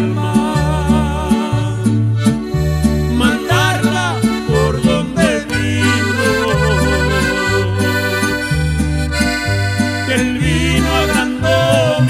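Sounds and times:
acoustic guitar: 0.0 - 12.0
bass line: 0.0 - 12.0
piano accordion melody: 0.0 - 12.0.

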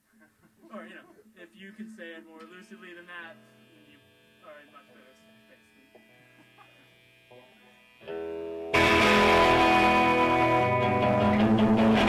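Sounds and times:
guitar amplifier hum: 1.8 - 12.0.

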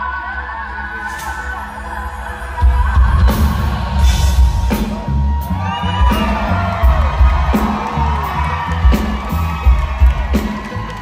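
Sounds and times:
live band playing heavy music: 0.0 - 11.0
audience cheering and whooping: 2.7 - 11.0.

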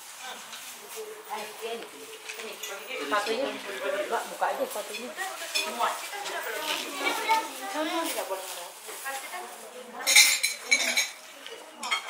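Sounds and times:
people chattering: 0.0 - 12.0
plates and cutlery clinking: 2.1 - 7.4, 10.0 - 12.0.

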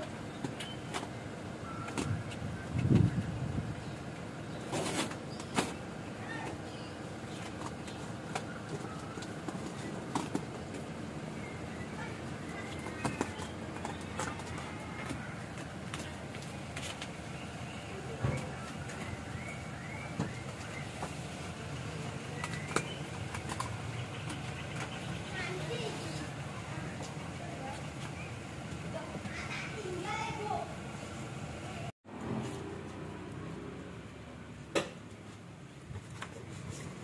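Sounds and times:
birds chirping: 0.0 - 31.9
indistinct voices: 17.2 - 30.9.

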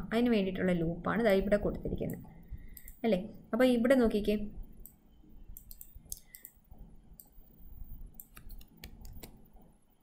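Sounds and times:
mouse and keyboard clicks: 5.6 - 6.6, 8.2 - 9.4.

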